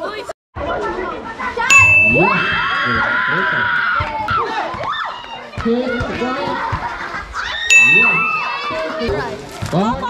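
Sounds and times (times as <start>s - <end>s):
crowd shouting and chatter: 0.0s - 10.0s
sharp metallic clang ringing: 1.7s - 2.6s, 7.7s - 8.7s.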